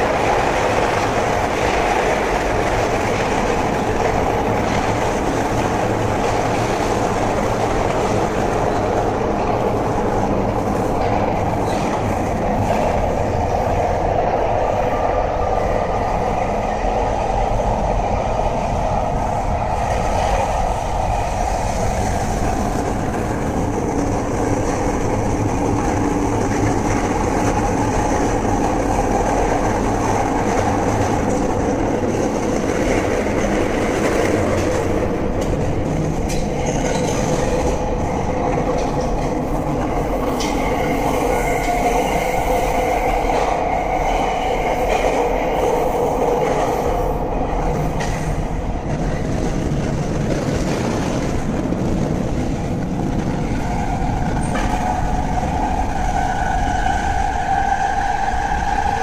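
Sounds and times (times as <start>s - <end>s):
train wheels rumbling on track: 0.0s - 59.0s.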